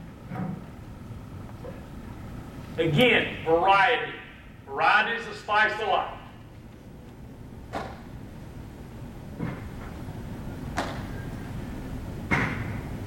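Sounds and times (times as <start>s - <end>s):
low room hum: 0.0s - 13.0s
baseballs smacking into mitt: 7.7s - 8.1s, 10.7s - 11.1s.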